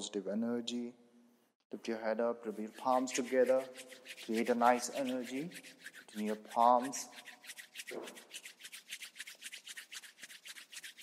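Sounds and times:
hands rubbing together: 0:02.5 - 0:11.0.

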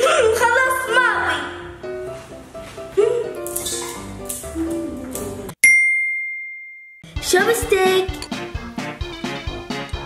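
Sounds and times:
background music: 0:00.0 - 0:05.6, 0:07.1 - 0:10.0
bright bell ding: 0:05.6 - 0:07.0.

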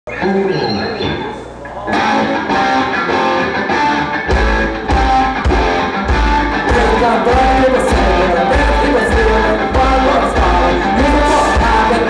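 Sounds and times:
electric guitar strumming chords: 0:00.1 - 0:12.0
rock band playing: 0:00.1 - 0:12.0.

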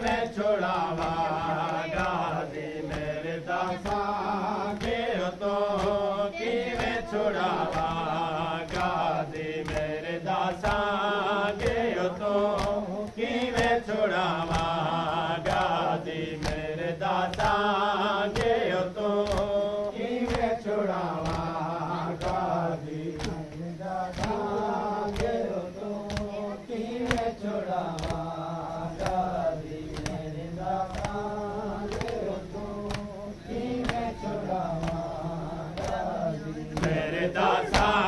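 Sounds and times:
men chanting a lament: 0:00.0 - 0:38.0.

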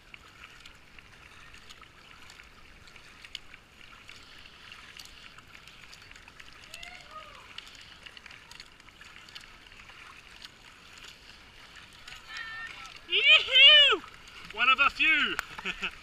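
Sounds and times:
paddle splashes and drips: 0:00.0 - 0:16.0
rushing river water: 0:00.0 - 0:16.0.

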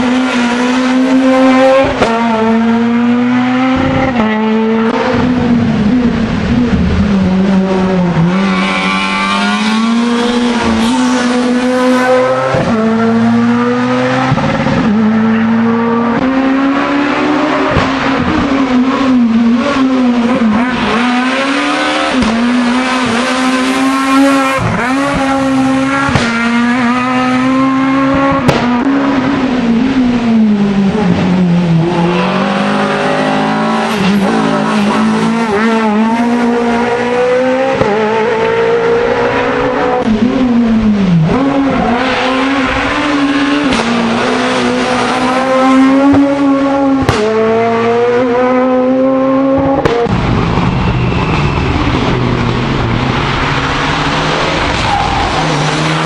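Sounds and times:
rally car engines revving: 0:00.0 - 0:56.0.

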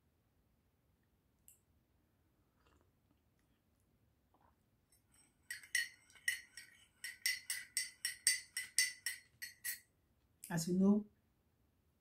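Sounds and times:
teaspoon clinking in ceramic mug: 0:05.0 - 0:09.8.

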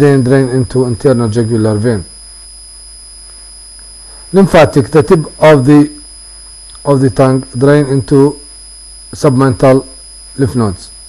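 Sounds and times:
high-pitched whine: 0:00.0 - 0:11.0
low electrical hum: 0:00.0 - 0:11.0.

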